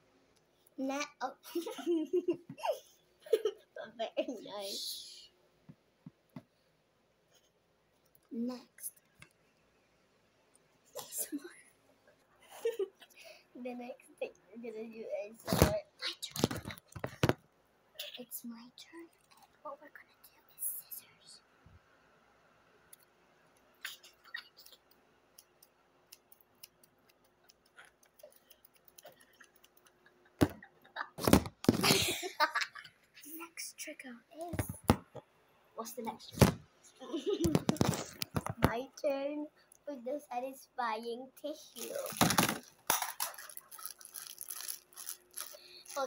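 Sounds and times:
plastic packet crinkling: 41.7 - 46.0.

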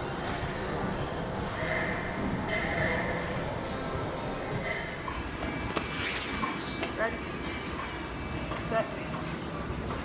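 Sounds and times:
busy gym hall background noise: 0.0 - 10.0.

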